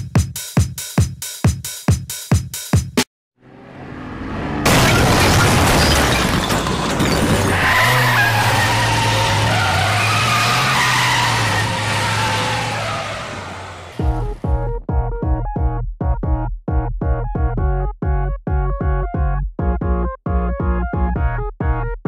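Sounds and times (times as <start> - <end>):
car engine: 3.4 - 14.4
car crashing through wall: 4.6 - 14.0
tire skid: 4.6 - 14.4.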